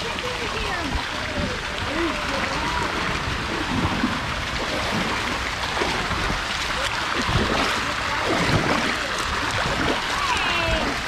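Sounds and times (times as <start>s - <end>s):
water rushing and lapping: 0.0s - 11.0s.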